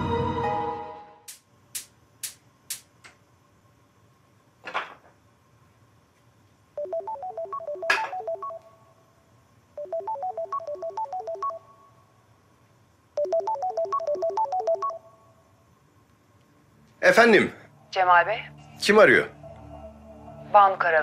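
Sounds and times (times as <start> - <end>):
phone melodic ringtone: 6.8 - 8.6, 9.8 - 11.8, 13.2 - 15.0.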